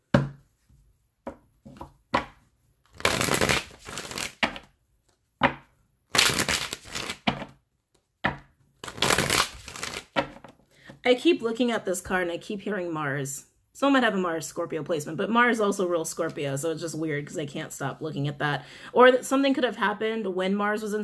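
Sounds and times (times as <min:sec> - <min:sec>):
cards shuffling: 0:02.8 - 0:04.7, 0:06.1 - 0:07.6, 0:08.8 - 0:10.4.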